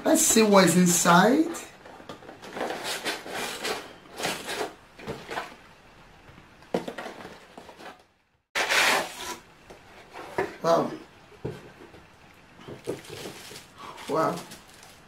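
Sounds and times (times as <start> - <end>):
cardboard and paper rustling: 1.9 - 5.6, 12.6 - 15.0.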